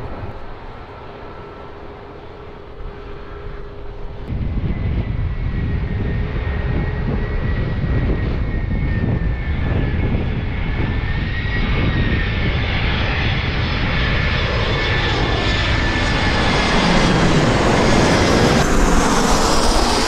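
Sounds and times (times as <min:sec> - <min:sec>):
jet engines rumbling with whine: 0:00.0 - 0:20.0.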